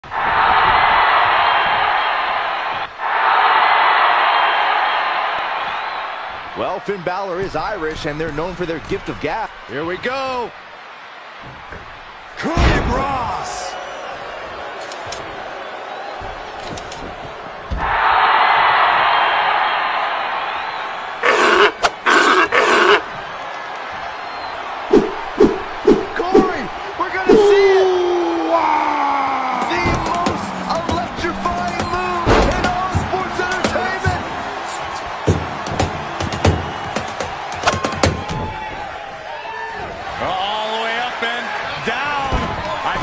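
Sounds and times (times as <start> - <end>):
arena crowd noise: 0.0 - 43.0.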